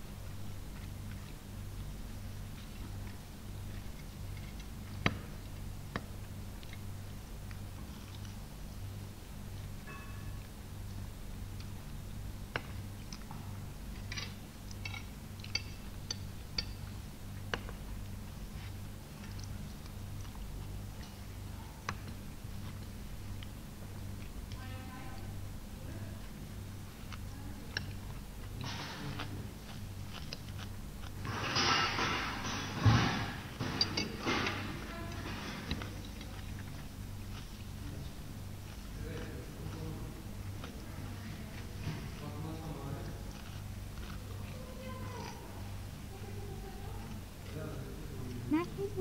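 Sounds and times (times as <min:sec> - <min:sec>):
low electrical hum: 0:00.0 - 0:49.0
forks clicking on plates: 0:14.1 - 0:16.9, 0:33.6 - 0:36.5
cutlery clinking on plates: 0:31.3 - 0:36.3.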